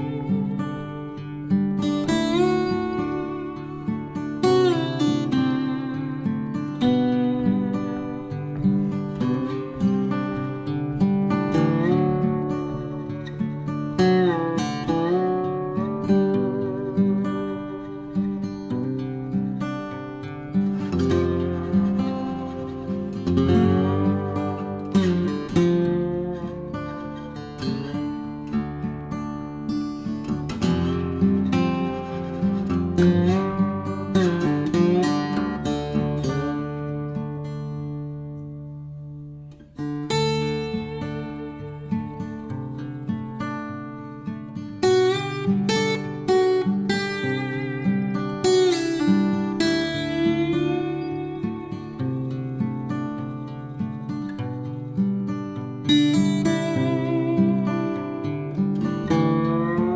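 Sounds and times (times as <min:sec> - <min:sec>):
acoustic guitar picking: 0:00.0 - 0:59.9.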